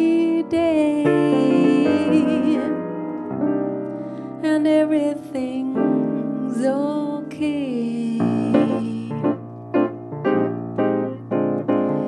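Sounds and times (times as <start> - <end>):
person singing: 0.0 - 3.0, 4.4 - 9.4
swing piano chords: 0.0 - 12.0.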